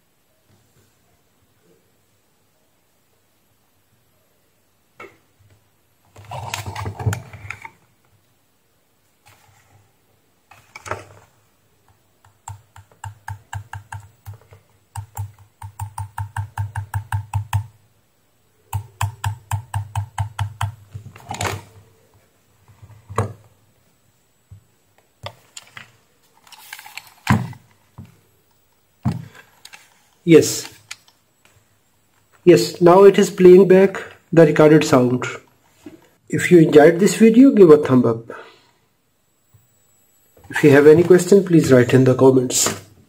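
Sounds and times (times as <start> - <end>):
knocks and handling sounds: 18.9 - 23.6, 24.5 - 32.4.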